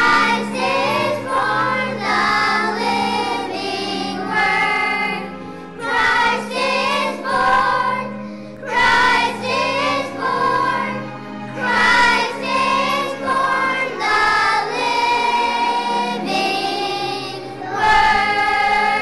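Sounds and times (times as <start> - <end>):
children's choir singing: 0.0 - 19.0
instrumental accompaniment low notes: 0.0 - 19.0.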